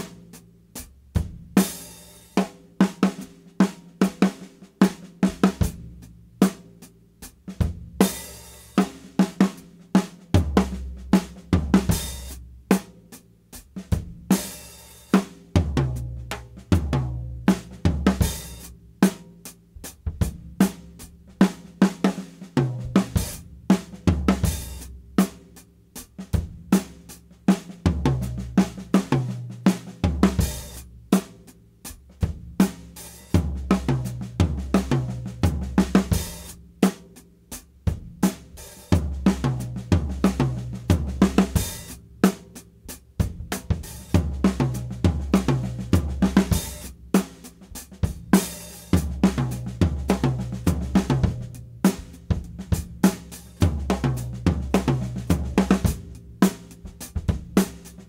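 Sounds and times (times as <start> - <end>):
drum kit playing: 0.0 - 58.0.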